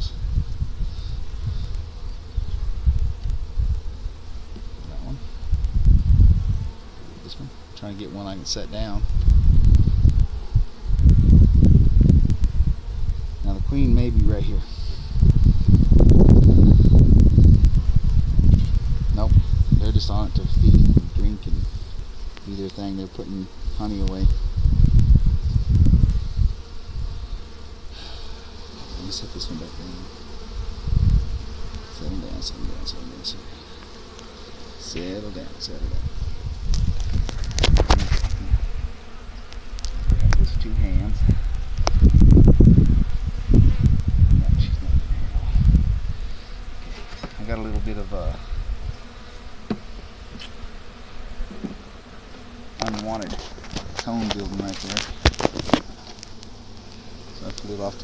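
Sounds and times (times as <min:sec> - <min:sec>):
bees flying past whining: 0:00.0 - 0:58.0
honeybees buzzing: 0:00.0 - 0:58.0.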